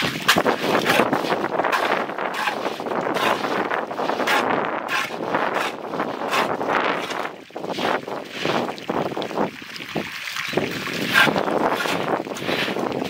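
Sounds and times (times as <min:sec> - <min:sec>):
broom swishing water on concrete: 0:00.0 - 0:08.9, 0:10.8 - 0:13.0
water splashing: 0:00.0 - 0:13.0.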